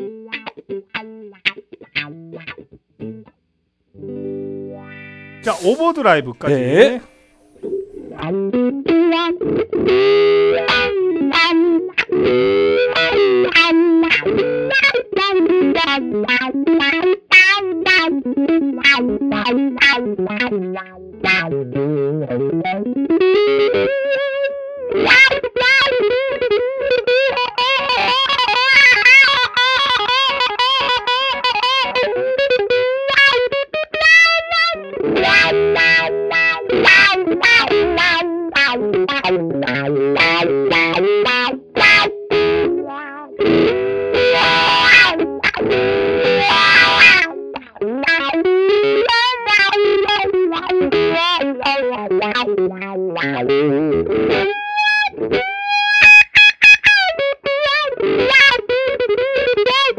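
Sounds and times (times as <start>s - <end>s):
overdriven electric guitar with wah: 0.0s - 3.3s, 4.0s - 5.7s, 6.8s - 59.9s.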